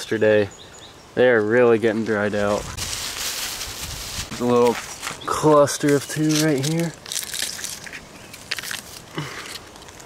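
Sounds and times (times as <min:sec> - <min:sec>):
dry leaves crackling and crunching: 0:02.4 - 0:10.0.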